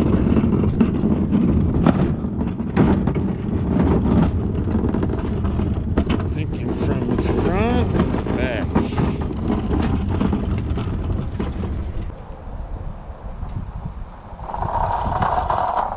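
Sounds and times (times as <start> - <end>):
cart casters rolling on concrete: 0.0 - 12.1, 14.4 - 15.9.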